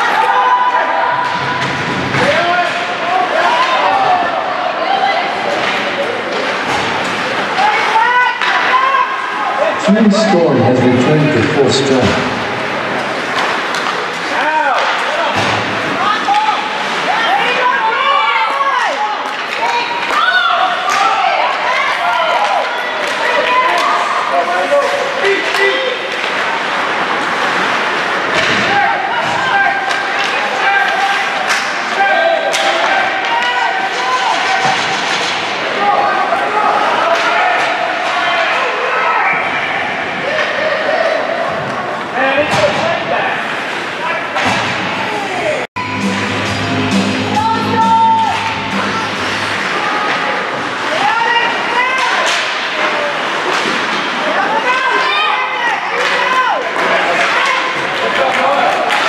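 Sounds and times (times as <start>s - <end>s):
hockey sticks and puck clacking: 1.2s - 4.1s, 5.4s - 8.8s, 13.0s - 17.6s, 19.2s - 35.8s, 49.6s - 55.0s, 55.8s - 59.0s.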